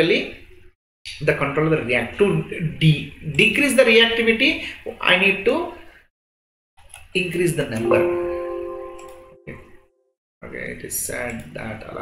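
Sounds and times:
computer warning chime: 7.8 - 9.7.

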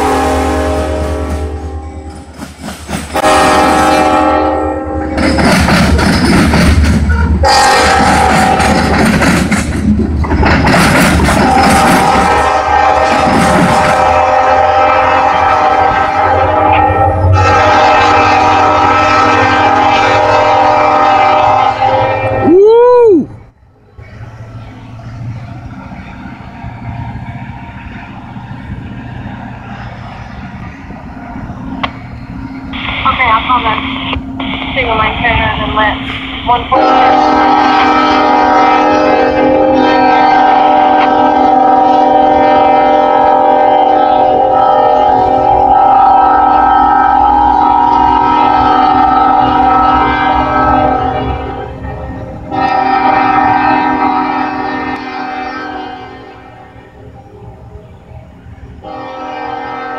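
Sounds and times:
locomotive air horn blasts: 0.0 - 2.1, 3.1 - 5.2, 7.1 - 8.9, 11.4 - 22.5, 32.8 - 56.7, 58.8 - 59.9
train rumbling past: 0.0 - 59.9.

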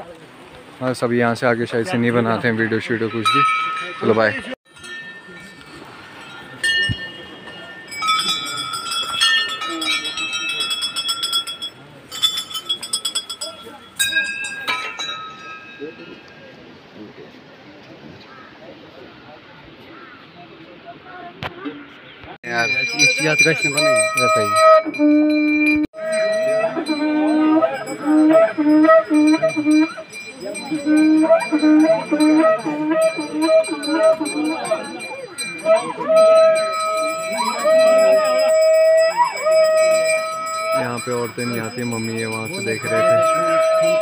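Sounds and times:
metal bells ringing: 1.9 - 16.8, 22.4 - 44.0.

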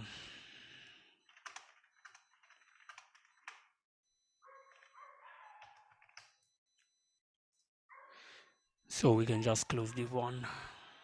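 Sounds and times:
computer keyboard typing: 1.3 - 3.7.

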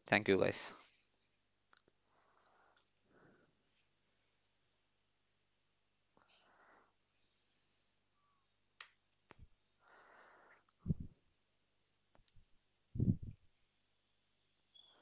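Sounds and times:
soft breathy noises: 0.6 - 4.8, 6.1 - 8.7, 9.4 - 11.3
dull low thumps: 13.0 - 13.4.

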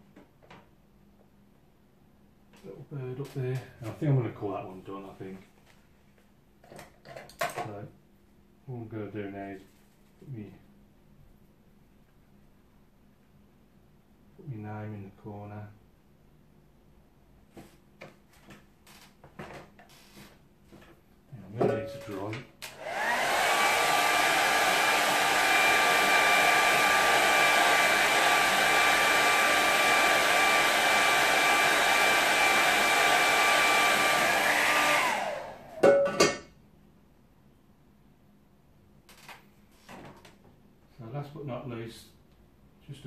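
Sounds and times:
hair dryer blowing: 22.6 - 36.0.

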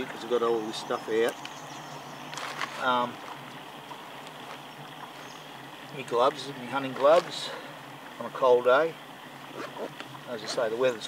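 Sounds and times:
outdoor background hiss: 0.0 - 11.0
fabric backpack rustling: 2.3 - 3.4.

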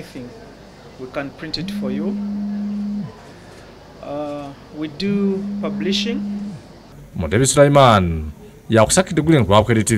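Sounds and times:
man holding a long vowel: 1.6 - 3.2, 4.9 - 6.7.

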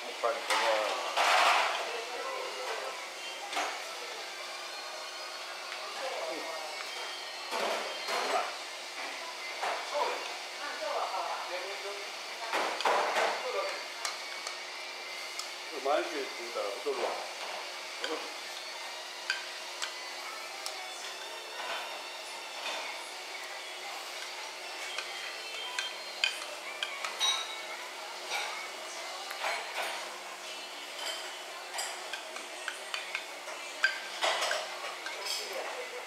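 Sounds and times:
kitchen background hiss: 0.0 - 36.0.

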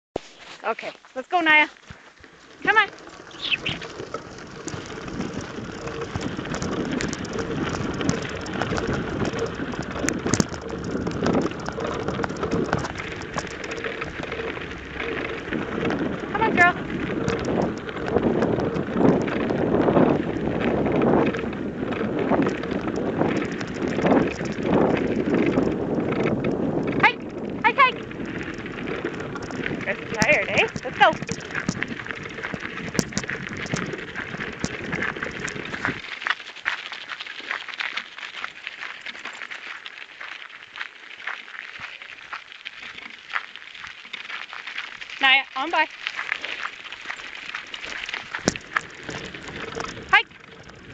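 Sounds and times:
wheels and paws crunching on gravel: 0.2 - 50.9
high squeaky calls: 3.3 - 3.9.

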